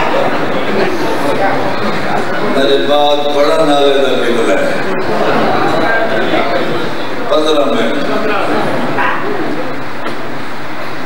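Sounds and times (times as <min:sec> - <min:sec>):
man speaking into a microphone: 0:02.2 - 0:09.0.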